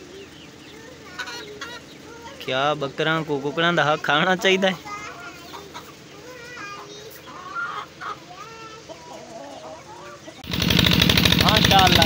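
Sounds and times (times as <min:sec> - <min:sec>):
chickens clucking: 0:00.0 - 0:10.5
loud steady engine: 0:10.4 - 0:12.0.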